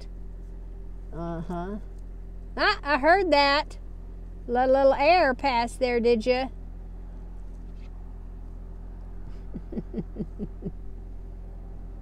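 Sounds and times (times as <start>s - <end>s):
low steady hum: 0.0s - 12.0s
woman laughing: 9.3s - 10.8s.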